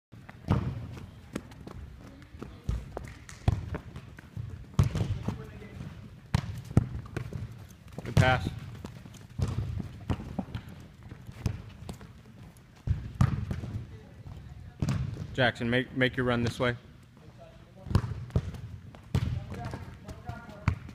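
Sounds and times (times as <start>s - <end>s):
balls kicked on artificial turf: 0.2s - 15.4s, 17.8s - 20.9s.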